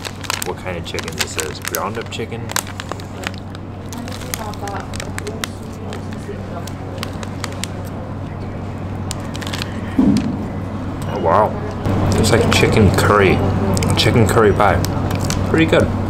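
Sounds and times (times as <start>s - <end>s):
plastic bag crinkling: 0.0s - 10.4s, 13.7s - 15.7s
steady low hum: 0.0s - 16.0s
low thump: 10.0s - 10.5s.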